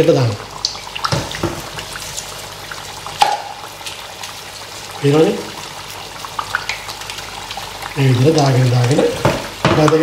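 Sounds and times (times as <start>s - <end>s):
oil popping and crackling: 0.0s - 10.0s
patties deep-frying in hot oil: 0.0s - 10.0s.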